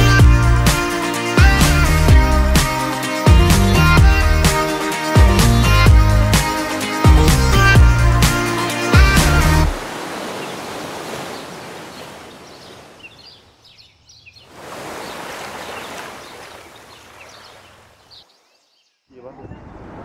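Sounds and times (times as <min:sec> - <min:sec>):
music track: 0:00.0 - 0:09.8
ocean surf: 0:08.4 - 0:13.1, 0:14.5 - 0:17.9
faint bird calls: 0:10.2 - 0:19.6.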